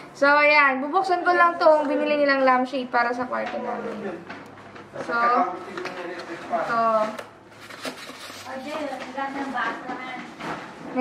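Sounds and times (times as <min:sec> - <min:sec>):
cardboard packaging clicks and rustles: 0:05.7 - 0:09.3.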